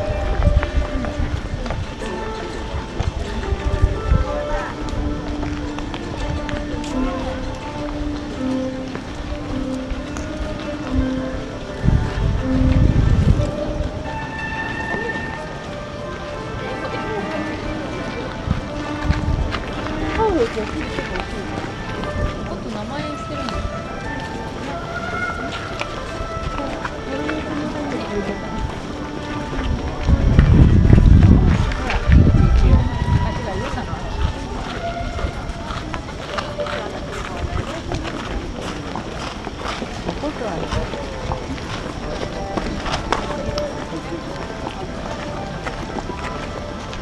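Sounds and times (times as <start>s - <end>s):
low rumble on microphone: 0.0s - 14.4s, 18.1s - 47.0s
crowd talking: 0.0s - 47.0s
music: 0.0s - 47.0s
footstep clicks: 0.1s - 47.0s.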